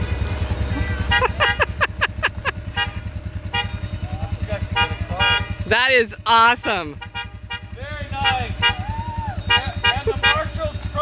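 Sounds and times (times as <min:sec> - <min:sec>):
voices calling out: 0:00.0 - 0:11.0.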